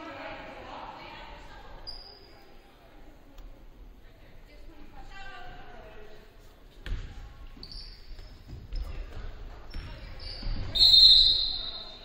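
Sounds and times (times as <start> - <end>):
crowd chatter: 0.0 - 7.6
basketball bouncing on wooden floor: 8.1 - 10.7.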